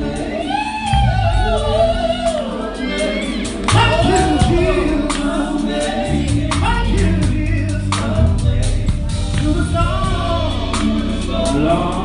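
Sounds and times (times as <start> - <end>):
gospel quartet singing in harmony: 0.0 - 12.0
instrumental accompaniment with bass: 0.0 - 12.0.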